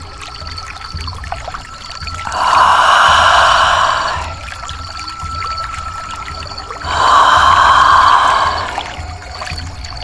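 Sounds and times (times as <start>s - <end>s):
water trickling: 0.0s - 10.0s
loud breathy whoosh: 2.3s - 4.4s, 6.9s - 9.0s.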